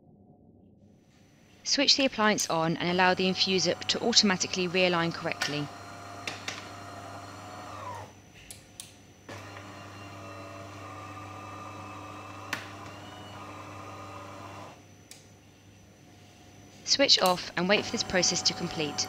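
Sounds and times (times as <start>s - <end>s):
coffee machine motor humming: 2.9s - 8.1s, 9.3s - 14.8s, 17.6s - 19.0s.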